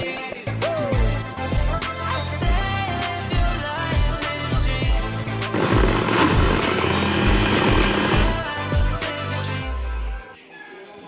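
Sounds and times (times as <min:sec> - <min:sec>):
pop music with steady beat: 0:00.0 - 0:10.1
mixer grinder motor whirring: 0:05.5 - 0:08.5.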